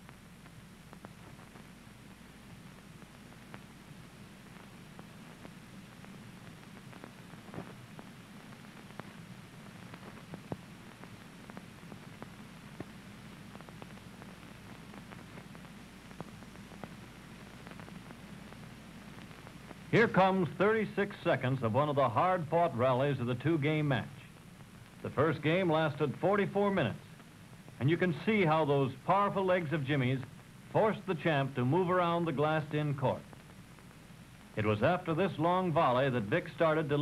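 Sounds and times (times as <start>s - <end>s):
film soundtrack hum and hiss: 0.0s - 37.0s.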